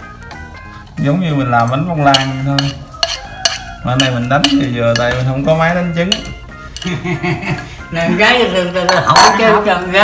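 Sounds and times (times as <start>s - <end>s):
chopsticks scraping steel bowl: 1.6s - 7.0s.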